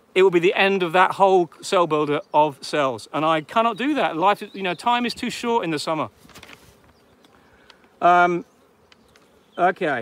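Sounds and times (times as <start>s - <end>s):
bees buzzing: 0.0s - 10.0s
faint clicks: 7.2s - 8.0s.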